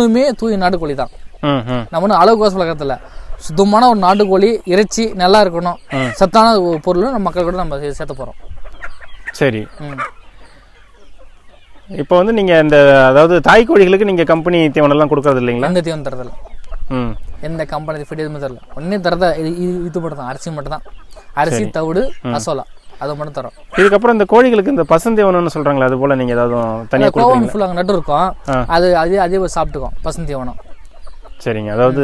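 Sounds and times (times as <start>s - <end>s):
man's voice: 0.0s - 8.2s, 21.4s - 22.6s, 23.8s - 30.5s, 31.4s - 32.0s
man speaking: 0.0s - 8.4s, 9.4s - 10.1s, 11.9s - 30.6s, 31.4s - 32.0s
hens clucking: 0.0s - 32.0s.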